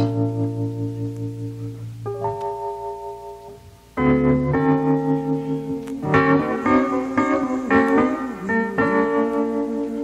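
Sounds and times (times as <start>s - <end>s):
keyboard chord ringing: 0.0s - 10.0s.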